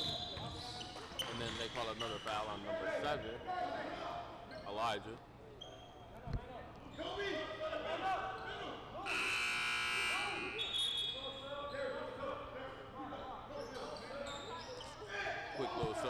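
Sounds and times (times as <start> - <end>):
sneakers squeaking on hardwood: 0.0 - 2.5
scoreboard buzzer: 9.1 - 10.4.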